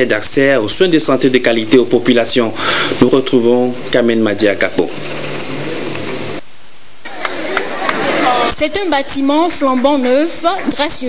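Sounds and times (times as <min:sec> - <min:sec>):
steady hiss: 0:00.0 - 0:08.7.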